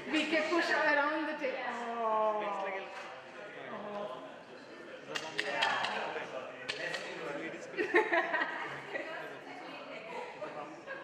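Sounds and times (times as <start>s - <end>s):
people talking in large hall: 0.0s - 11.0s.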